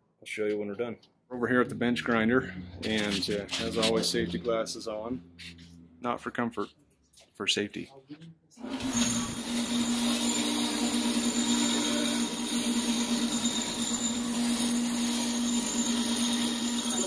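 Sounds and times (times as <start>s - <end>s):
wire brush grinder on bolt: 8.6s - 17.0s.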